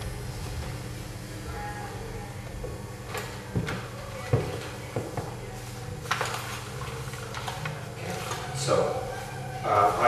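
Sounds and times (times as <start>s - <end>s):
low hum: 0.0s - 6.0s.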